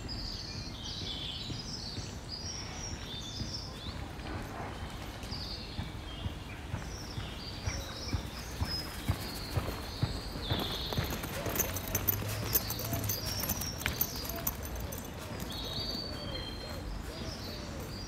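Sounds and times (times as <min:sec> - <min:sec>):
birds chirping: 0:00.0 - 0:18.0
street ambience: 0:00.0 - 0:18.0.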